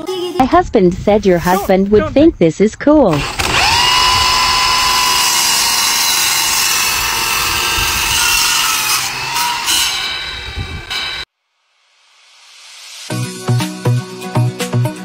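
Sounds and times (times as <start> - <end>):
saw blade spinning with high whine: 3.1 - 11.3.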